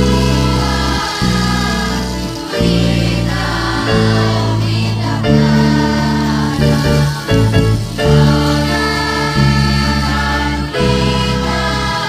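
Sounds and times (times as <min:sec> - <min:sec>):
children's choir singing: 0:00.0 - 0:12.0
instrumental band accompaniment: 0:00.0 - 0:12.0.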